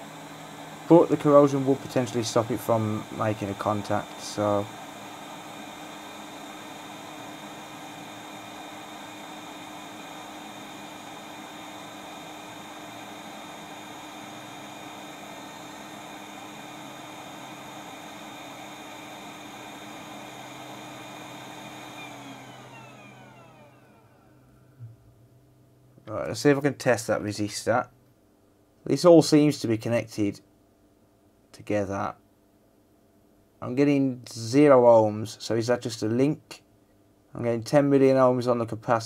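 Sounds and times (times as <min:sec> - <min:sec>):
hot air blower blowing: 0:00.0 - 0:24.8.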